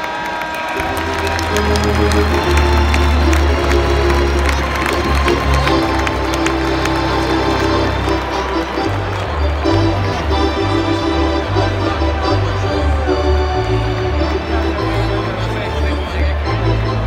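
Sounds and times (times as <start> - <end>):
crowd cheering and clapping: 0.0 - 17.0
arena organ playing held notes: 0.8 - 17.0
sustained bass line: 0.8 - 17.0.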